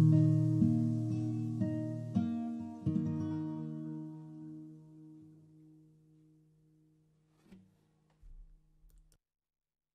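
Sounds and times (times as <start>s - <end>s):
acoustic guitar chord ringing: 0.0s - 7.6s
soft low thump: 8.2s - 9.0s.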